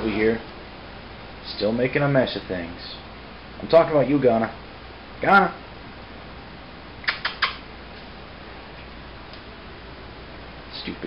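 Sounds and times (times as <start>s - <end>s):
steady low hum: 0.0s - 11.0s
short sharp clicks: 7.0s - 7.6s.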